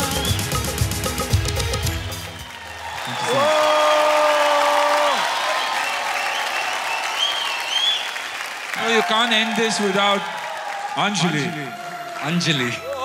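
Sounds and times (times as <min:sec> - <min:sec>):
audience applauding: 0:00.0 - 0:13.0.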